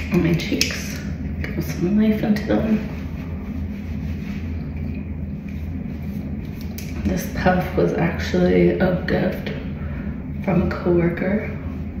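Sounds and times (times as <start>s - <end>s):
low room hum and rumble: 0.0s - 12.0s.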